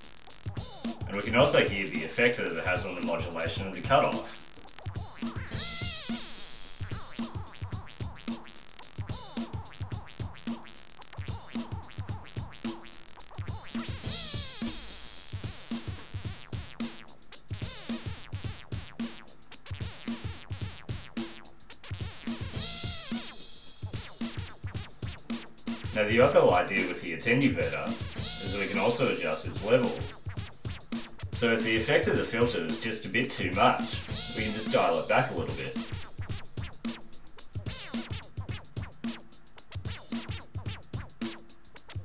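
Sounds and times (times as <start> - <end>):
drum machine loop: 0.0 - 42.0.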